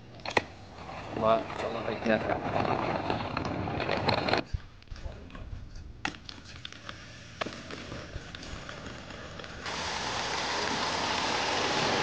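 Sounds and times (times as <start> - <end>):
rolling suitcase on wet paving: 8.2 - 12.0
steady loud hiss: 9.6 - 12.0.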